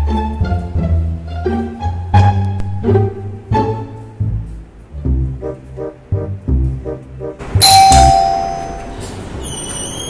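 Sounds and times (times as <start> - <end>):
background music with plucked bass: 0.0 - 8.7
doorbell chime: 7.6 - 9.0.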